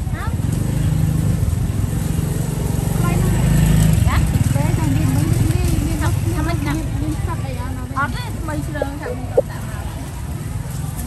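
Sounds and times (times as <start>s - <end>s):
scattered voices: 8.7s - 9.6s.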